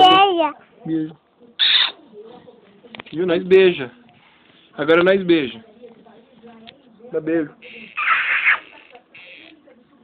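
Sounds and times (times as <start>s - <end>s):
loud kiss: 1.6s - 2.0s.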